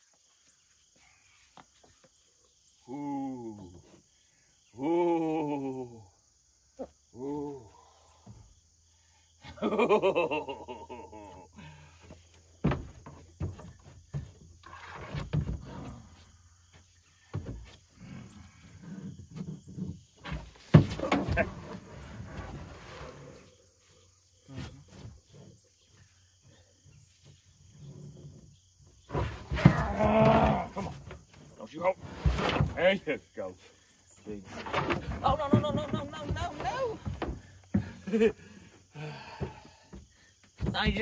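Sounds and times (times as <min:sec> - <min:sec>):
knocks and scrapes: 0:12.1 - 0:23.8, 0:24.4 - 0:38.2.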